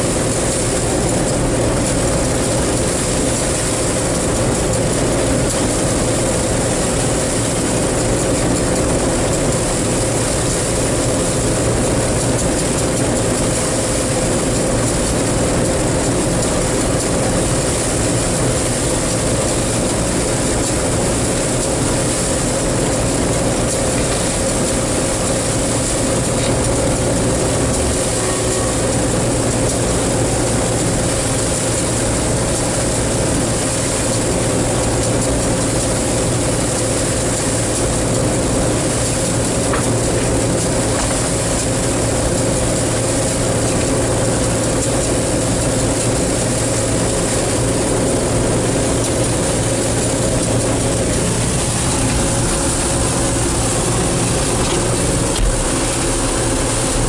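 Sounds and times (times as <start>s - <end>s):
combine harvester humming: 0.0s - 57.0s
steady machine whine: 0.0s - 57.0s.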